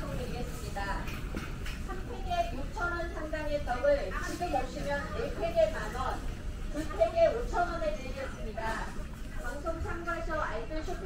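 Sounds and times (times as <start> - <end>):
store ambience hum: 0.0 - 11.0.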